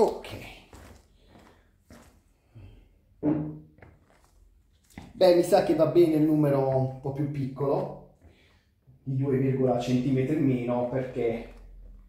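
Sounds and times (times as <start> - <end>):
footsteps on wooden floor: 0.0 - 2.3.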